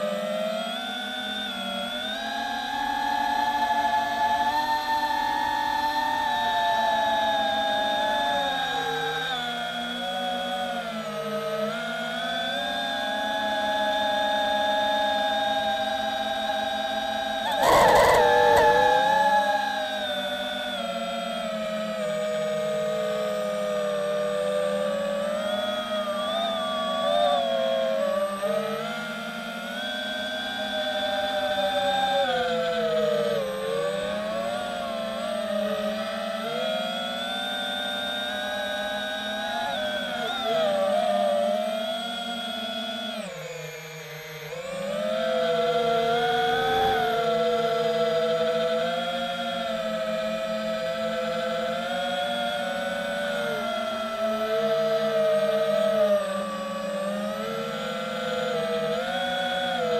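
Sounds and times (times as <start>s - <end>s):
drone motors whining: 0.0s - 59.9s.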